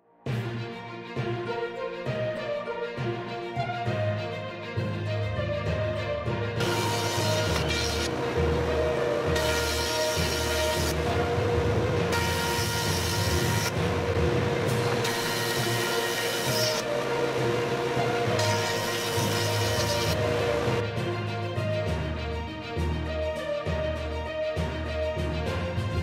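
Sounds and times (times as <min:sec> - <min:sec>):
background music: 0:00.0 - 0:26.0
jointer cutting boards: 0:06.6 - 0:20.8.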